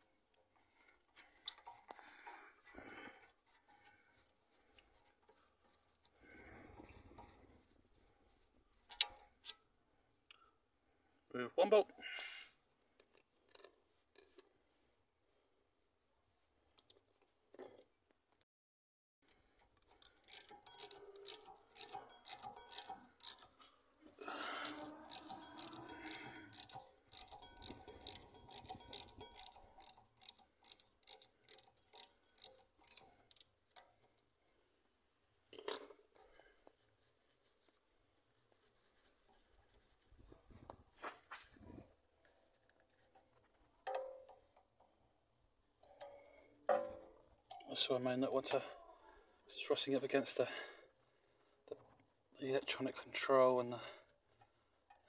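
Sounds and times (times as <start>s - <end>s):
hand ratchet clicking: 19.8s - 23.6s, 24.4s - 33.9s.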